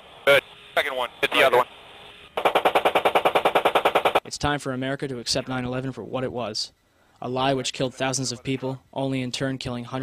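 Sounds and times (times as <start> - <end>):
automatic gunfire: 2.4 - 4.2.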